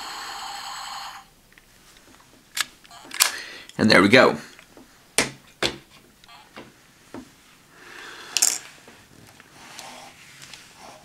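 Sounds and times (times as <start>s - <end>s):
hands rustling and scraping toy: 8.3s - 11.0s.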